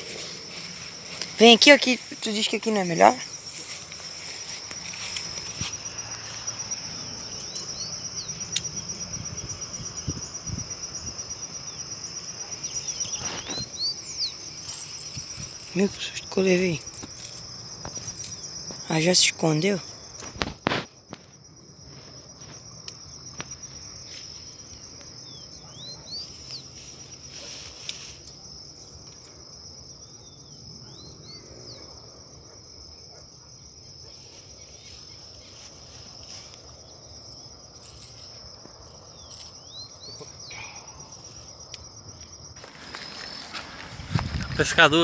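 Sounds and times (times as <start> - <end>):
insects trilling: 0.0 - 45.0.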